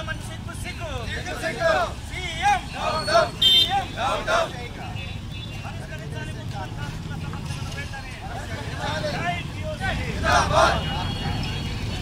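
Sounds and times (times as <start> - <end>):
faint crowd voices: 0.0 - 12.0
voices shouting: 0.4 - 5.0, 8.2 - 12.0.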